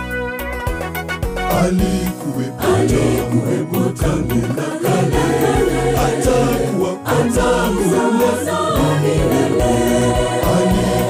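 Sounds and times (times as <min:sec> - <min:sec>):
choir singing gospel: 0:01.5 - 0:11.0
steady low beat: 0:02.8 - 0:11.0.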